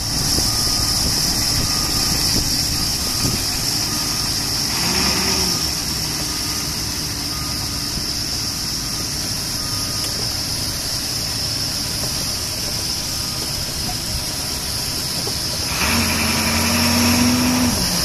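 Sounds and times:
diesel bus engine idling: 0.0s - 18.0s.

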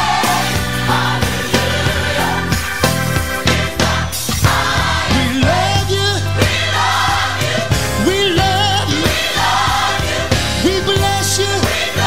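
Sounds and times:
drum beats: 0.0s - 12.0s
gospel singing: 0.0s - 12.0s
sustained bass line: 0.0s - 12.0s.

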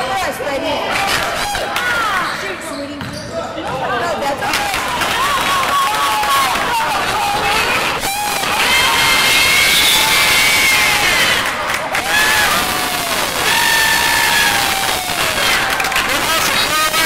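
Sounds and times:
crowd voices: 0.0s - 17.0s
sneakers squeaking on gym floor: 2.2s - 4.2s.

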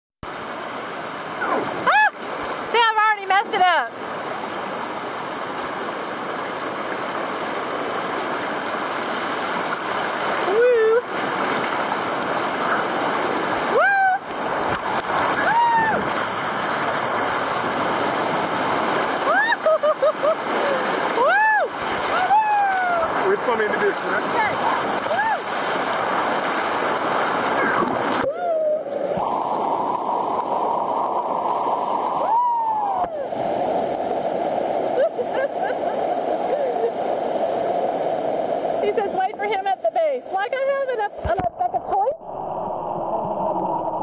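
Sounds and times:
river water rushing and splashing: 0.2s - 44.0s
person whooping: 1.4s - 2.2s, 13.7s - 14.3s, 15.4s - 16.1s, 19.2s - 19.9s, 20.6s - 23.2s, 25.1s - 25.4s, 28.2s - 29.0s, 32.2s - 33.3s.

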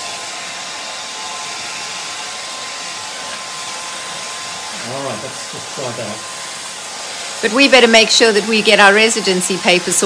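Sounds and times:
hair dryer blowing: 0.0s - 10.0s.

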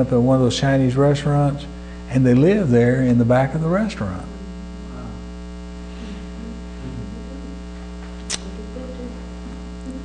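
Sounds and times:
electrical mains hum: 0.0s - 10.0s
short click: 8.2s - 8.5s.

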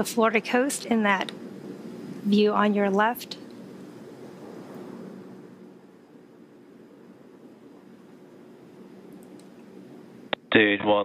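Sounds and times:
faint steady hiss: 0.0s - 11.0s
low hum: 0.0s - 11.0s.

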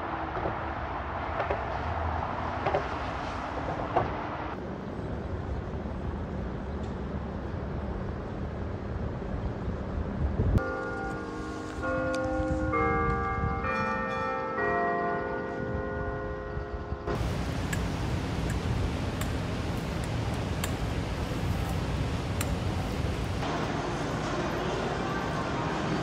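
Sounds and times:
street noise: 0.0s - 26.0s
clock-tower bells chiming a tune: 10.6s - 18.4s.

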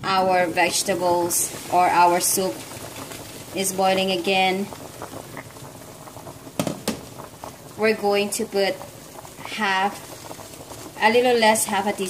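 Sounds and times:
soup bubbling in a pot: 0.0s - 12.0s
sharp bubble pops: 6.5s - 7.2s.

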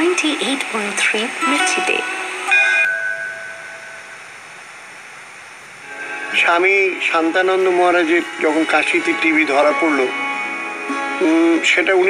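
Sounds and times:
steady hiss: 0.0s - 12.0s
radio jingle held notes: 5.8s - 10.4s.

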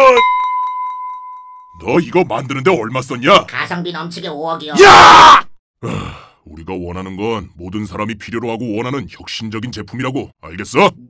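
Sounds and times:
person shouting: 4.7s - 5.5s
man's voice: 6.5s - 11.0s.

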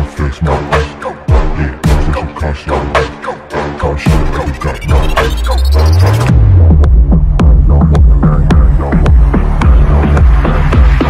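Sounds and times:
electronic dance music: 2.9s - 11.0s.

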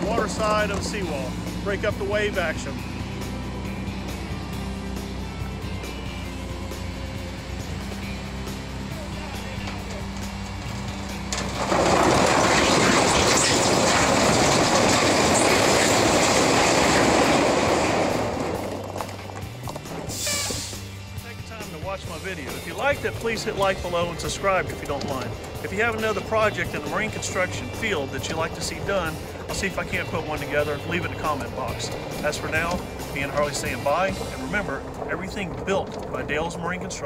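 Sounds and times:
diesel truck engine running: 0.0s - 37.0s
rocks pouring from dump bed: 9.4s - 20.8s, 22.4s - 37.0s.

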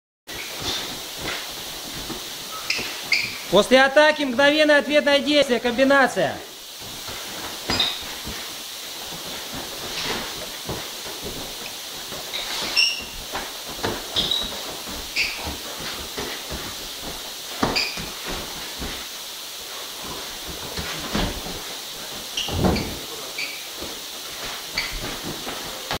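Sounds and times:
shoes squeaking on floor: 0.3s - 4.4s, 7.0s - 19.1s, 20.0s - 26.0s
steady hiss: 0.3s - 26.0s.

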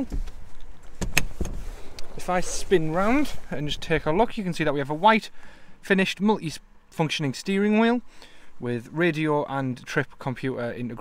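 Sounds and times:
sharp clicks and knocks: 0.0s - 1.6s.

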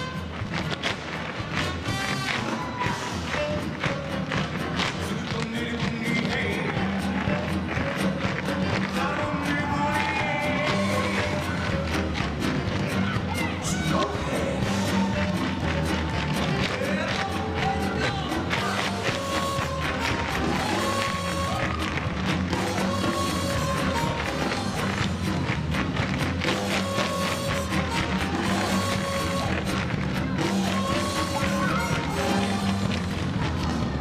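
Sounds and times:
tap shoes clattering on stage: 0.0s - 13.2s, 15.0s - 34.0s
recorded music: 0.0s - 34.0s.

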